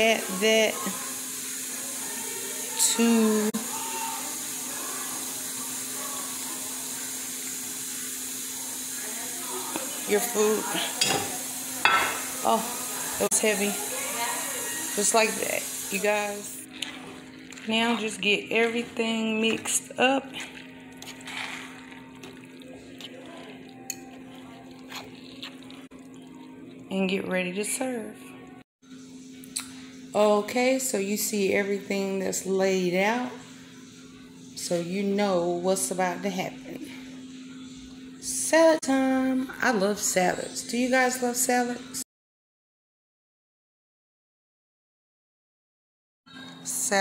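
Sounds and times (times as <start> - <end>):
food sizzling in a pan: 0.0 - 26.7
spoon stirring food in a pan: 16.6 - 26.6.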